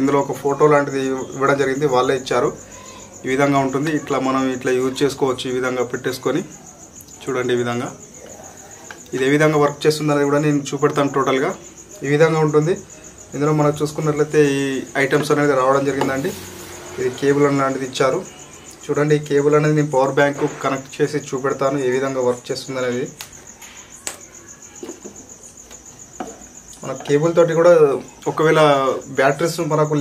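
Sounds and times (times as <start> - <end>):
cricket chirping: 0.0 - 30.0
man speaking: 9.1 - 23.2, 26.8 - 30.0.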